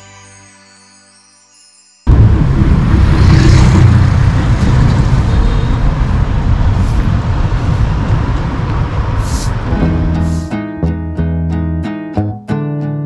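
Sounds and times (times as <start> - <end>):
road traffic rumble: 2.1 - 11.2
brief hiss: 9.2 - 10.6.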